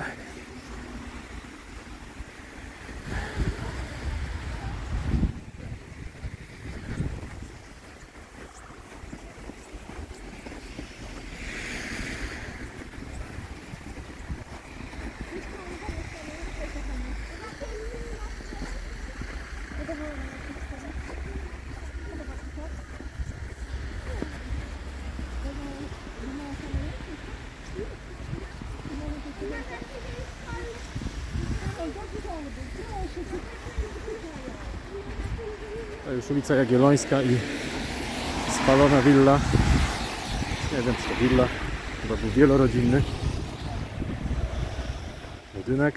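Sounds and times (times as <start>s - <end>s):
wind buffeting microphone: 0.0s - 36.5s, 37.4s - 45.9s
faint voices of people: 14.6s - 36.5s.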